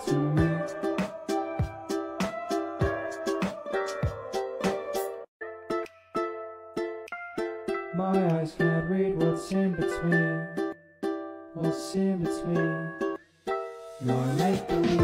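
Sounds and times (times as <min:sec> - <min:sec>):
plucked ukulele notes: 0:00.0 - 0:15.0.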